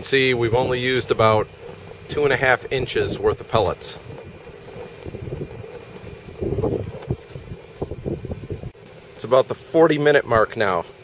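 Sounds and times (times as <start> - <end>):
wind rumble on microphone: 0.0 - 8.8
faint steady hum: 0.0 - 11.0
stove flames burning: 0.0 - 11.0.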